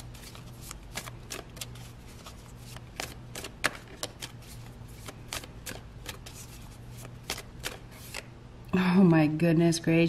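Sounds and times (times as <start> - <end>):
cards being shuffled: 0.0 - 8.3
woman speaking: 8.7 - 10.0.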